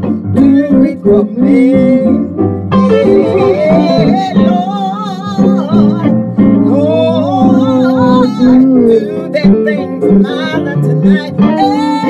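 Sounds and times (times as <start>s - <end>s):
instrumental accompaniment: 0.0s - 12.0s
woman singing gospel: 3.2s - 12.0s.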